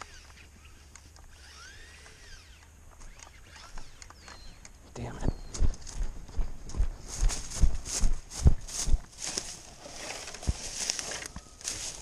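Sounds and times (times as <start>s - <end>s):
electric motor whining: 0.0s - 4.6s.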